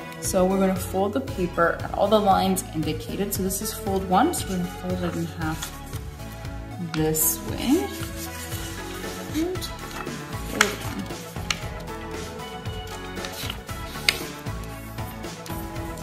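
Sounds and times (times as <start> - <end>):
quiet background music: 0.0 - 16.0
paper being folded and creased: 5.2 - 6.0, 7.6 - 11.6, 12.8 - 16.0.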